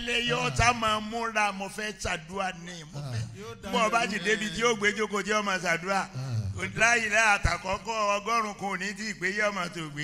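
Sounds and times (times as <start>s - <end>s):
man speaking over pa: 3.0s - 4.8s.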